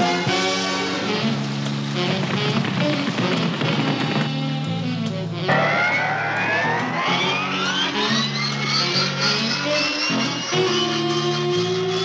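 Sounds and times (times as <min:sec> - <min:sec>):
cartoon music with low notes: 0:05.5 - 0:09.2.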